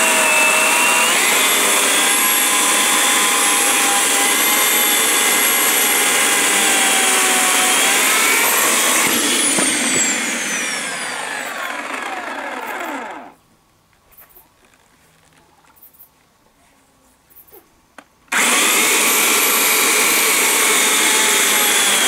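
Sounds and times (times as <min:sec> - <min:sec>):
electric chainsaw cutting wood: 0:00.0 - 0:13.4, 0:18.3 - 0:22.0.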